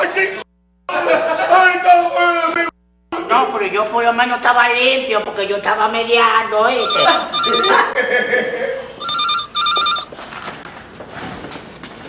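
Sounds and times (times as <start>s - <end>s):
telephone electronic ring: 6.7s - 8.0s, 9.0s - 10.2s.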